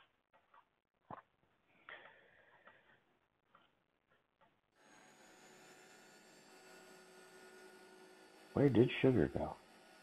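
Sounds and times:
man speaking: 8.6 - 9.5.

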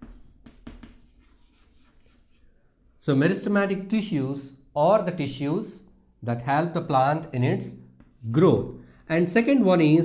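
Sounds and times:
chalk scratching on chalkboard: 0.0 - 2.6.

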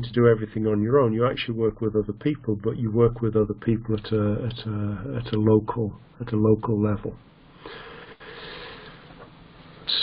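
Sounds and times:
man breathing in: 7.6 - 9.2.

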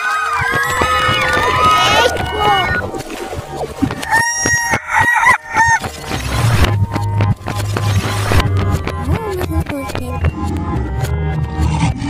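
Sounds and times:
rooster crowing: 4.0 - 5.8.

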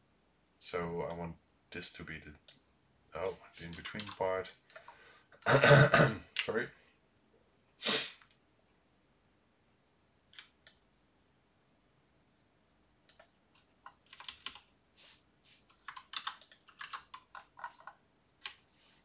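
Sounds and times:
computer keyboard typing: 3.2 - 5.0, 13.1 - 14.7, 15.7 - 18.7.

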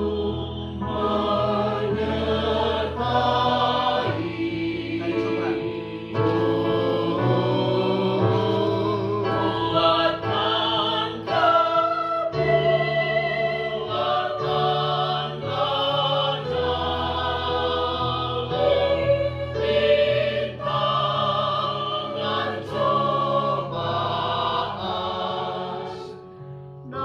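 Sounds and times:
choir singing a hymn: 0.0 - 27.0.

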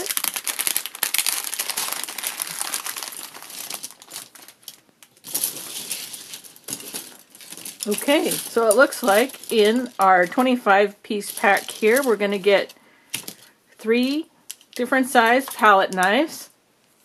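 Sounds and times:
plastic packaging crinkling: 0.0 - 13.5
paintbrushes and palette knives clattering: 4.6 - 10.5, 11.2 - 13.4.

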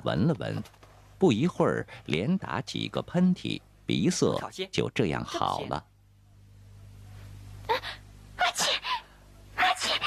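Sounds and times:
steady low hum: 0.0 - 10.0
woman sneezing: 7.7 - 9.0.

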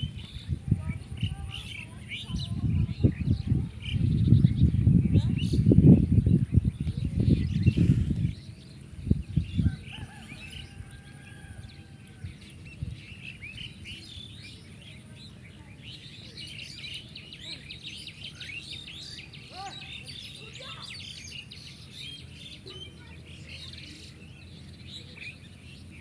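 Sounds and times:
small birds chirping: 0.0 - 26.0.

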